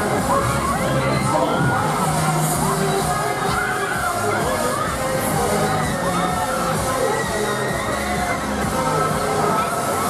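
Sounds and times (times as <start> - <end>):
fairground music: 0.0 - 10.0
riders screaming and shouting: 0.0 - 10.0.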